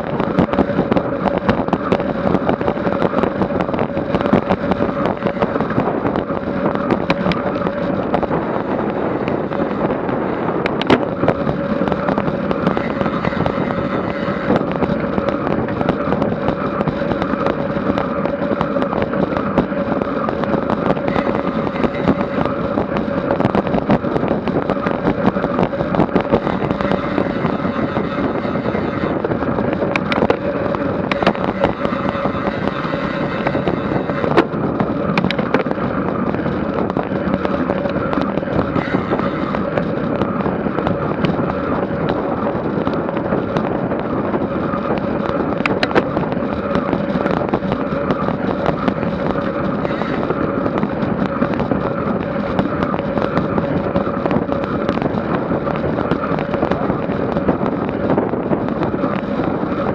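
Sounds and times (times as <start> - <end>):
bike tyres on asphalt: 0.0 - 59.9
sharp clicks and ticks: 0.0 - 59.9
steady hum: 0.0 - 59.9
wind on microphone: 0.0 - 59.9.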